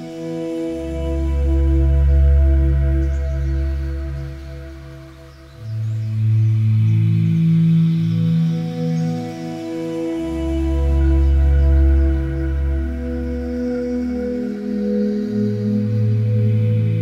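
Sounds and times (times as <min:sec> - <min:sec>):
ambient music with held tones: 0:00.0 - 0:17.0.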